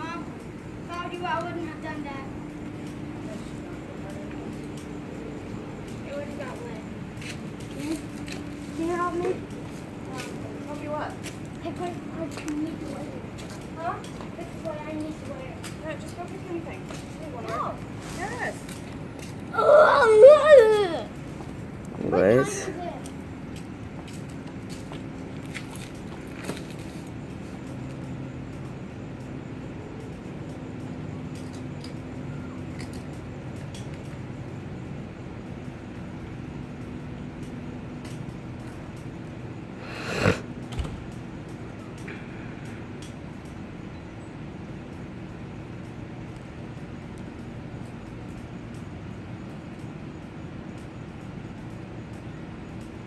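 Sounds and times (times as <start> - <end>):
faint outdoor background noise: 0.0 - 53.0
faint ticks: 0.0 - 53.0
steady low hum: 0.0 - 53.0.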